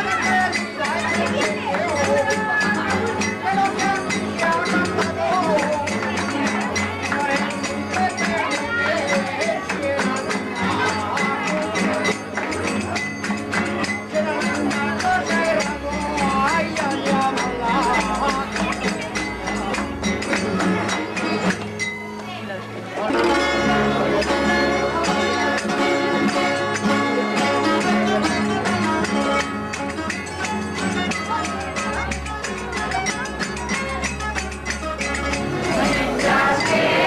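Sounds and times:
man singing folk song: 0.0 - 20.8, 23.0 - 33.7
plucked and strummed strings: 0.0 - 37.0.

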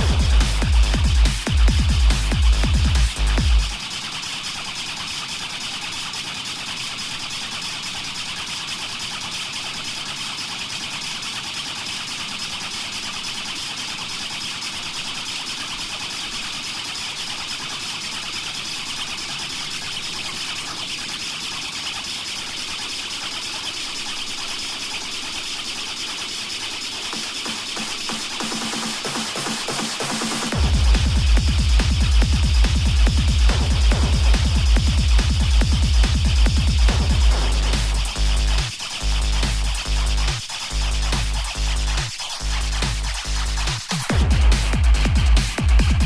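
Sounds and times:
grainy noise drone: 0.0 - 46.0
techno bass: 0.0 - 46.0.

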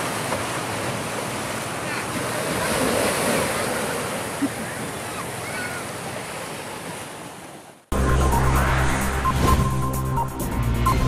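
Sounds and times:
waves breaking on beach: 0.0 - 7.9.

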